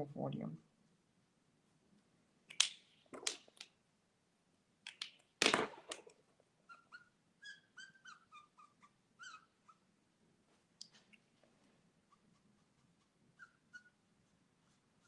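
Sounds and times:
squeaky pitched chirps: 6.7 - 9.8.

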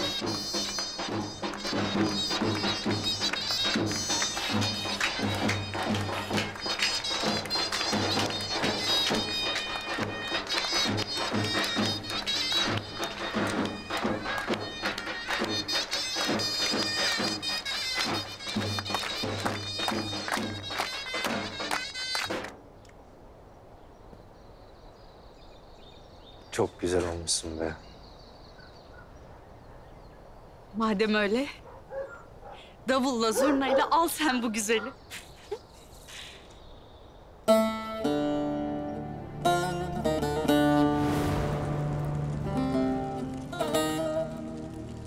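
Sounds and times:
bass drum beat: 0.0 - 21.7
shrill reedy shawm melody: 0.0 - 22.6, 37.5 - 45.0.

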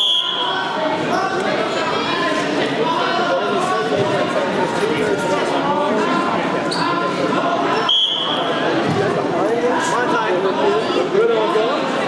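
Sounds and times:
referee's whistle blast: 0.0 - 0.6, 7.8 - 8.5
many voices chattering: 0.0 - 12.0.

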